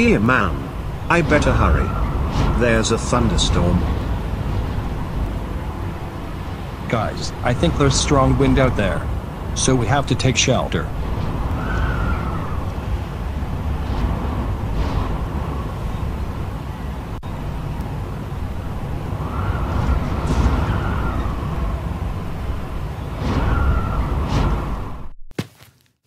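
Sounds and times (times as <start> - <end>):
strong wind roaring and howling: 0.0 - 25.2.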